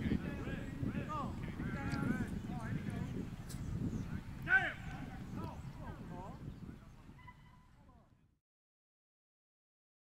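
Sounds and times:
distant voices and calls: 0:00.0 - 0:08.2.

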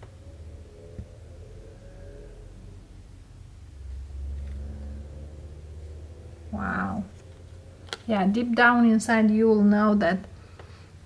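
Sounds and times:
low steady rumble with hum: 0:00.0 - 0:11.0.

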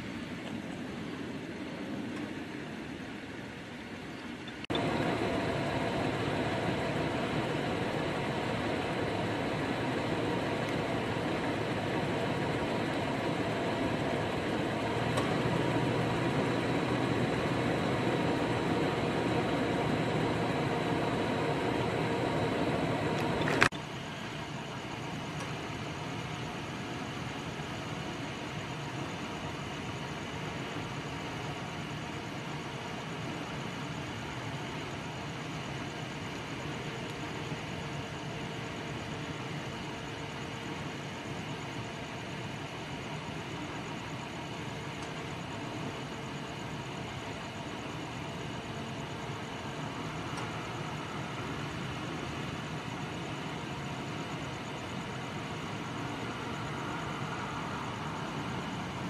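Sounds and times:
steady mechanical hum: 0:00.0 - 0:59.0.

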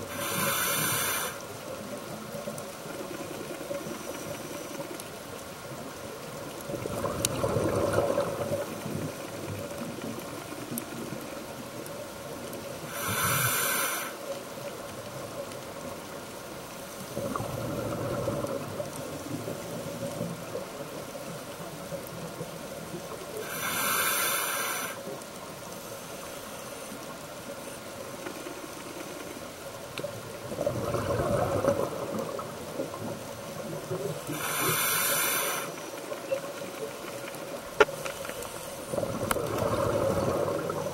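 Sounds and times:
regulator hissing breath: 0:00.0 - 0:01.6, 0:12.9 - 0:14.3, 0:23.4 - 0:25.1, 0:34.2 - 0:36.0
muffled bubbling rumble underwater: 0:00.0 - 0:13.3, 0:14.3 - 0:23.6, 0:27.0 - 0:35.0, 0:35.7 - 0:40.9
bubbles gurgling underwater: 0:06.6 - 0:09.8, 0:17.2 - 0:19.8, 0:30.2 - 0:34.1, 0:38.9 - 0:40.9.

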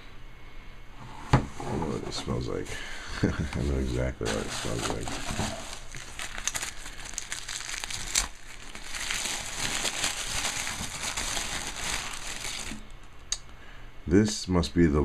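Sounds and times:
tissue paper crinkling and rustling: 0:03.7 - 0:13.0
sharp paper crackle: 0:04.2 - 0:13.0.

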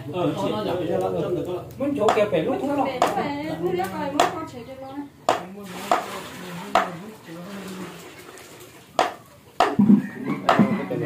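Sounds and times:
cleaver chopping meat on wood: 0:02.1 - 0:02.3, 0:03.0 - 0:03.2, 0:04.2 - 0:04.4, 0:05.3 - 0:06.0, 0:09.0 - 0:10.8.

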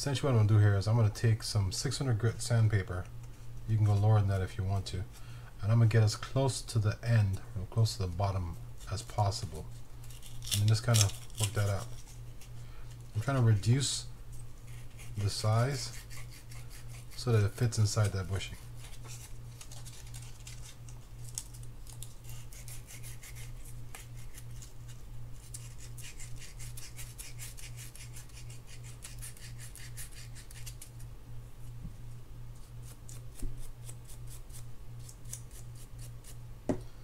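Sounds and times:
sandpaper rasping on metal: 0:14.7 - 0:20.3, 0:22.2 - 0:24.5, 0:25.5 - 0:30.8.

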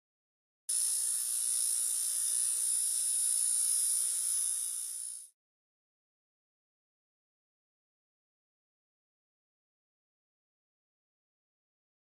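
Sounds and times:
high-pitched electronic buzz: 0:00.7 - 0:05.3.

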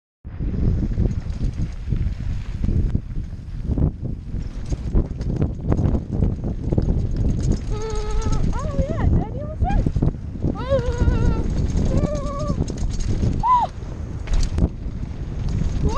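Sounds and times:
wind buffeting camera: 0:00.2 - 0:15.9
bike rattling on dirt trail: 0:00.3 - 0:15.9.

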